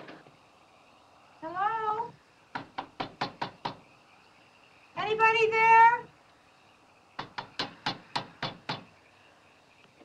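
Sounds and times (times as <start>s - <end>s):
knocks on glass door: 2.5s - 3.8s, 7.2s - 8.9s.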